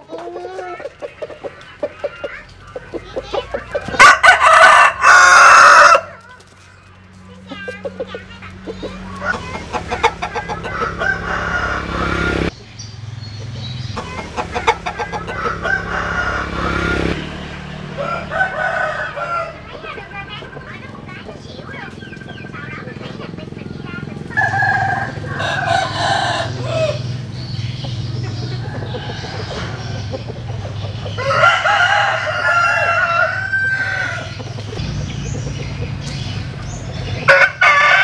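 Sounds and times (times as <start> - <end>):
roosters crowing: 3.3 - 6.3, 8.7 - 12.5, 14.0 - 22.8, 24.1 - 38.0.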